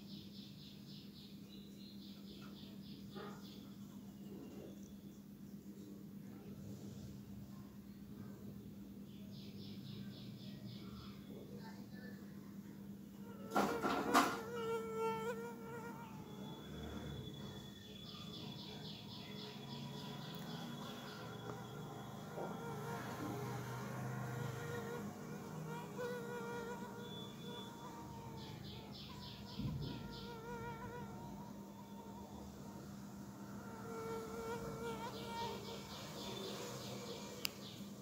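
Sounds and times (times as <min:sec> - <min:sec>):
buzzing insect: 0:13.1 - 0:17.6, 0:19.8 - 0:32.1, 0:33.2 - 0:37.2
faint high rhythmic chirping: 0:15.8 - 0:23.1, 0:26.0 - 0:32.6.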